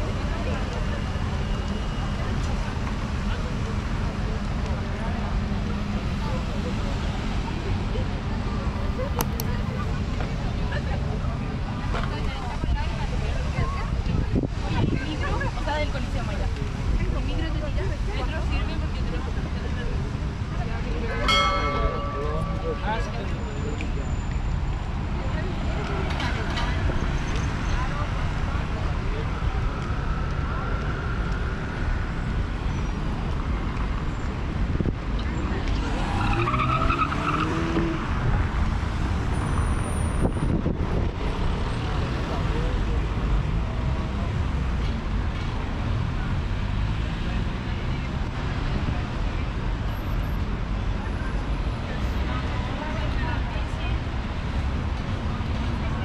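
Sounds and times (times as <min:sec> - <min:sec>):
cars driving on cobbled road: 0:00.0 - 0:56.0
low traffic rumble: 0:00.0 - 0:56.0
passers-by voices: 0:00.0 - 0:56.0.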